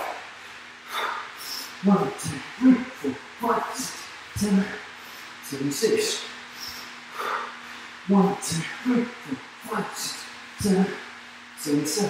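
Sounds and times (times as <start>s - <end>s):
man breathing hard: 0.3s - 1.8s, 3.8s - 5.4s, 6.5s - 8.9s.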